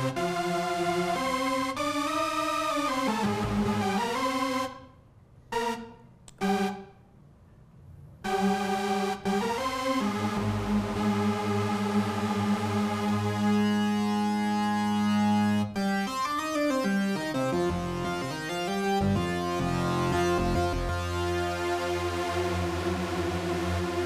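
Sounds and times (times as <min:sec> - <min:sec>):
synthesizer chords: 0:00.0 - 0:07.2, 0:08.2 - 0:24.0.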